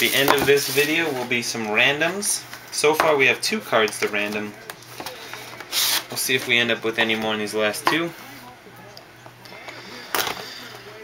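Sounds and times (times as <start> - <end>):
faint voices: 3.2 - 11.0.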